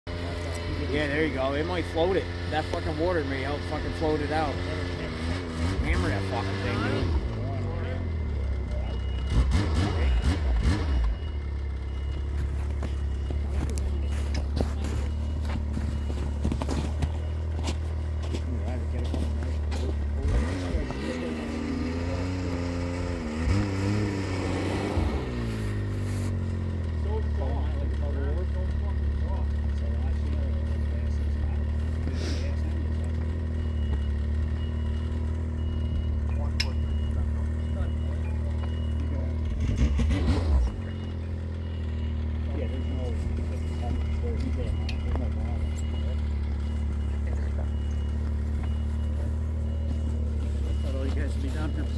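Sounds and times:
snowmobile engine idling and revving: 0.1s - 51.9s.

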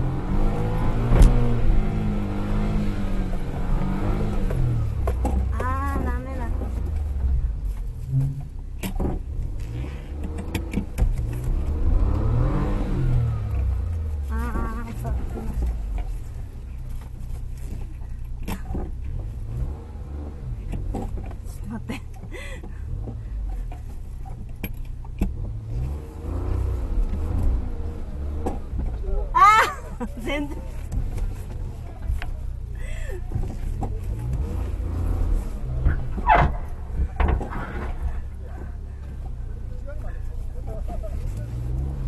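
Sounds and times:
car engine running at low revs: 0.0s - 42.0s.

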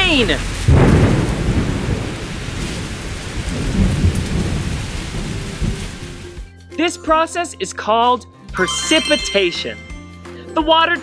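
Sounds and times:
steady rain: 0.0s - 6.4s
rolling thunder: 0.6s - 6.0s.

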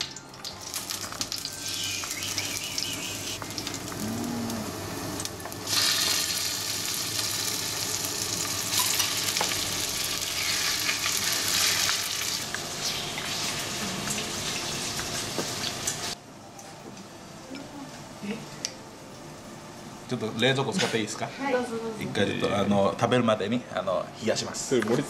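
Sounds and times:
food sizzling in hot oil: 0.0s - 16.2s.

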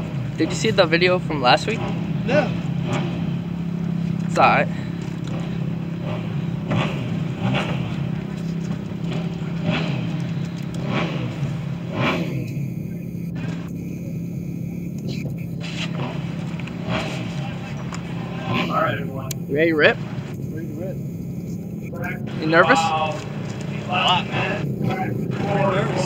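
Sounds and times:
engine idling: 0.0s - 26.0s
faint voices: 12.1s - 26.0s.

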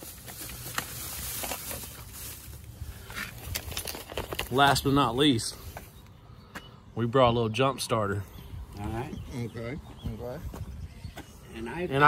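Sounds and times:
plastic bag rustling and crinkling: 0.0s - 5.0s.

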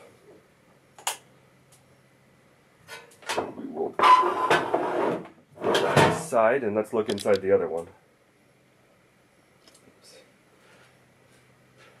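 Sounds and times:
scraping and rustling on workbench: 4.0s - 6.2s.

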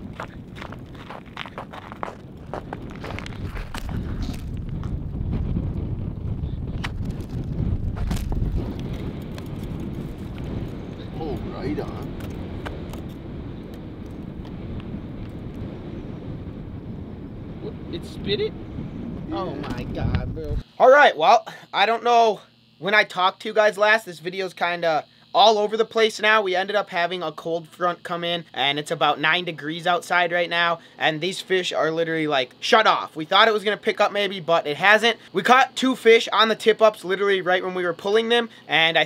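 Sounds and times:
footsteps on snowy ice: 0.0s - 5.0s, 6.9s - 10.7s
wind rumbling on microphone: 0.0s - 20.6s.

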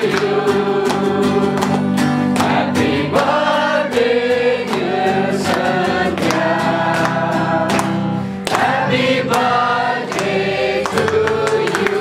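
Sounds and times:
group singing with music: 0.0s - 12.0s.

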